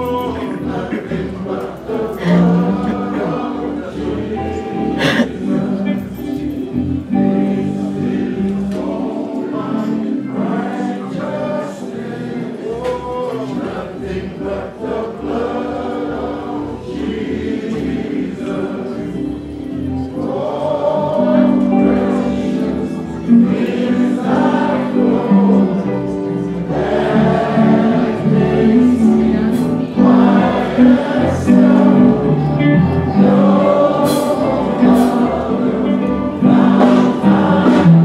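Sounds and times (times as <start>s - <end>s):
choir singing a hymn: 0.0s - 38.0s
instrumental accompaniment: 0.0s - 38.0s.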